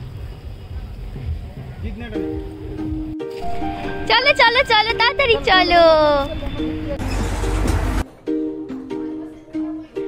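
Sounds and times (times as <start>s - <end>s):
background music: 1.9s - 10.0s.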